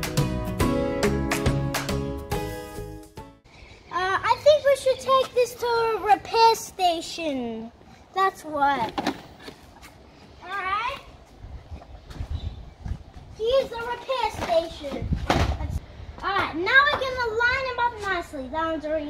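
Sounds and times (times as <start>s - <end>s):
background music: 0.0s - 3.5s
child calling: 3.9s - 7.2s, 10.4s - 11.2s.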